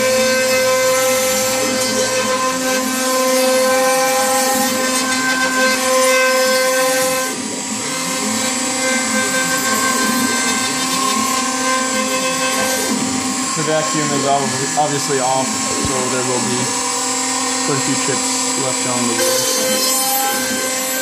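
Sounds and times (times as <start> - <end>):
end mill cutting wood: 0.0 - 21.0
router spindle whine: 0.0 - 21.0.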